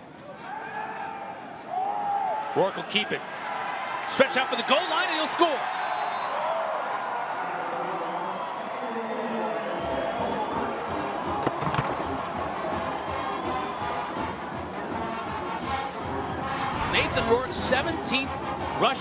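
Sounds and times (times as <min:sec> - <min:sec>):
stadium crowd cheering: 0:00.0 - 0:18.2.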